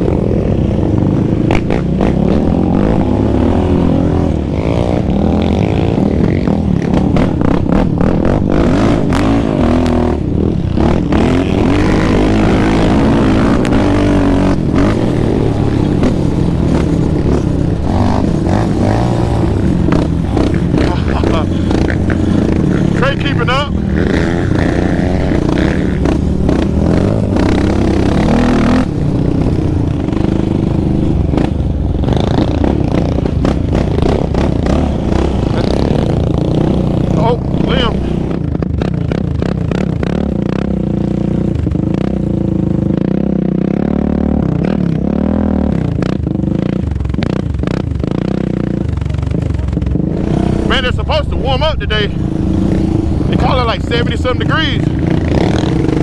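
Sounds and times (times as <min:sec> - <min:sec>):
quad bike engine revving: 0:00.0 - 0:56.0.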